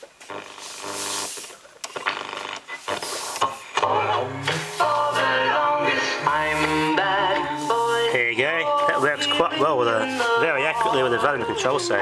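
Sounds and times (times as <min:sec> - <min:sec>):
radio tuning static: 0:00.2 - 0:05.3
radio station music: 0:00.3 - 0:12.0.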